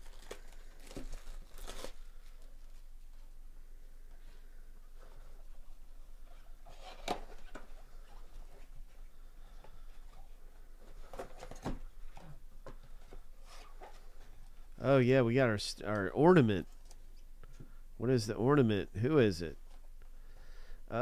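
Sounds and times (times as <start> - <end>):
sharp crackle: 0.0 - 2.8.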